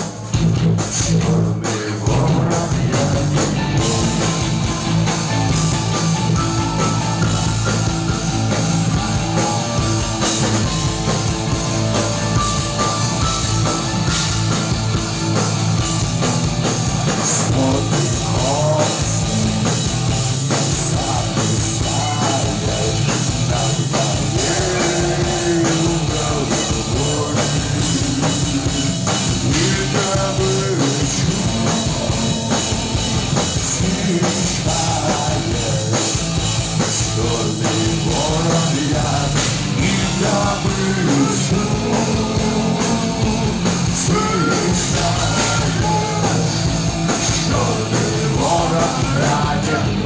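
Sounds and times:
drums: 0:00.0 - 0:50.0
electric guitar: 0:00.0 - 0:50.0
rock band playing live: 0:00.0 - 0:50.0
man singing into microphone: 0:00.4 - 0:04.4, 0:17.2 - 0:19.4, 0:20.7 - 0:28.8, 0:29.4 - 0:33.0, 0:33.6 - 0:36.2, 0:37.0 - 0:50.0.

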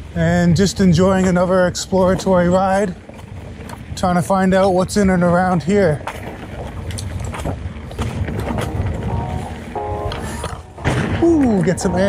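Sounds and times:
bike clicking and rattling: 0:00.0 - 0:11.9
bike tyres rumbling on dirt: 0:00.0 - 0:12.0.

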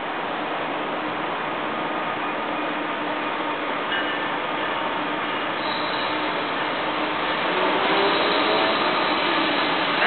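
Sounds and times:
approaching freight train: 0:00.0 - 0:10.0
faint high ringing tones: 0:03.9 - 0:07.1.

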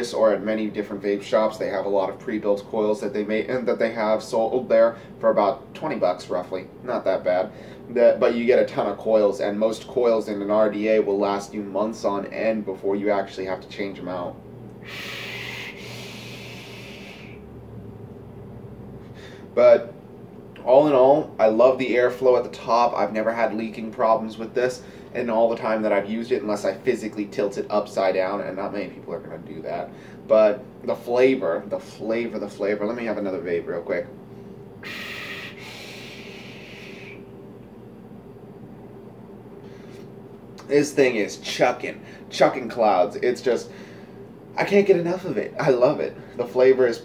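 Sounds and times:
steady low hum: 0:00.0 - 0:47.0
faint exhale: 0:07.5 - 0:07.9, 0:14.8 - 0:17.4, 0:19.0 - 0:19.5, 0:30.0 - 0:30.2, 0:34.3 - 0:37.2, 0:43.7 - 0:44.2
vape draw hiss: 0:14.8 - 0:17.4
hissing air draw through vape: 0:14.8 - 0:17.5, 0:34.4 - 0:37.4.

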